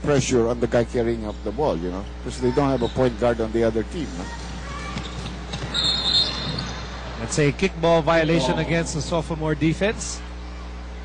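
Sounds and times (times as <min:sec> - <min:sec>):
arena crowd noise: 0:02.4 - 0:11.0
basketball bouncing on court: 0:04.3 - 0:06.9
referee's whistle: 0:05.6 - 0:06.7.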